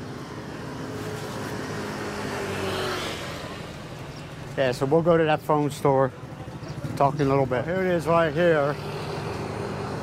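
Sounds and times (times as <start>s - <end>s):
vehicle engine hum passing: 0.0s - 5.2s, 6.1s - 10.0s.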